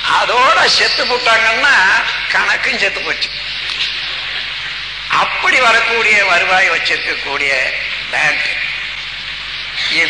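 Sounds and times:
steady hiss: 0:00.0 - 0:10.0
man speaking: 0:00.1 - 0:03.5, 0:05.1 - 0:08.8.

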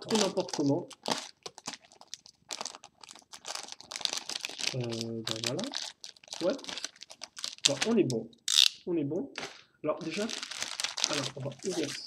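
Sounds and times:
plastic bag crinkling: 0:00.0 - 0:08.7, 0:09.4 - 0:12.0.

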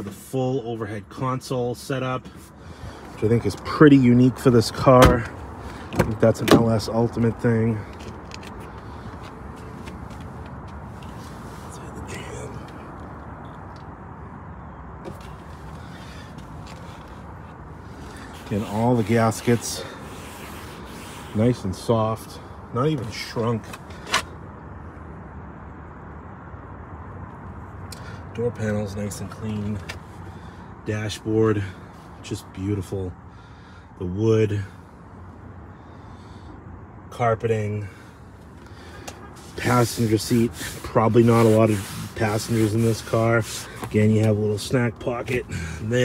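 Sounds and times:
outdoor background noise: 0:00.0 - 0:46.0.

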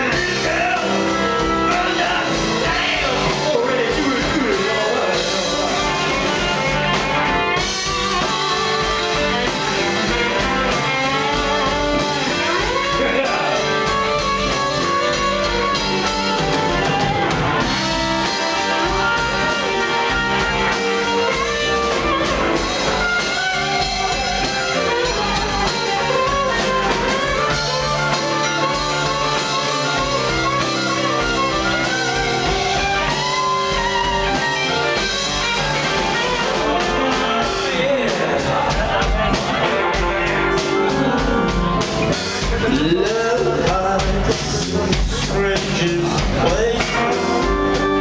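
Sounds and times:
electric guitar: 0:00.0 - 0:48.0
live rock band playing: 0:00.0 - 0:48.0.

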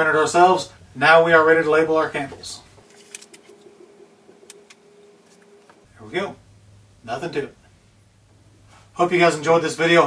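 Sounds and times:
faint steady hum: 0:00.0 - 0:10.0
paper rustling: 0:02.8 - 0:03.7.

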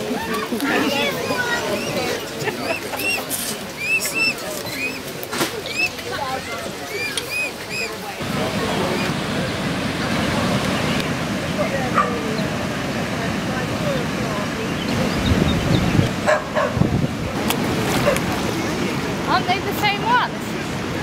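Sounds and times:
distant voices: 0:00.0 - 0:21.0
outdoor noise: 0:00.0 - 0:21.0
cygnets peeping: 0:01.3 - 0:06.0, 0:14.7 - 0:16.4.

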